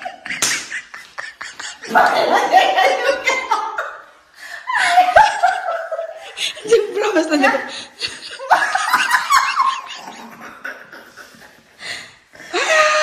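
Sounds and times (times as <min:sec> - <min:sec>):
person laughing hard: 0:00.0 - 0:03.8.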